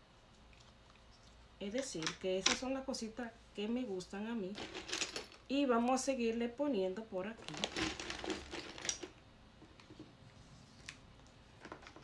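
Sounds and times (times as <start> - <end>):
pebbles clicking and rattling: 4.6 - 5.4, 7.4 - 9.2.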